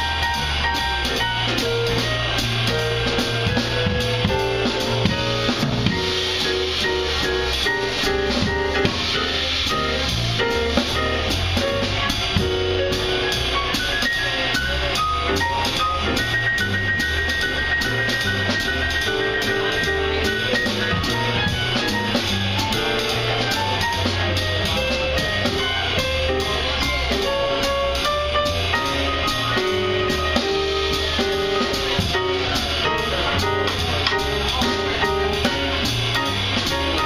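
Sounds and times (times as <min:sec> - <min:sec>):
jazz band playing: 0:00.0 - 0:37.0
steady cymbal beat: 0:00.0 - 0:37.0.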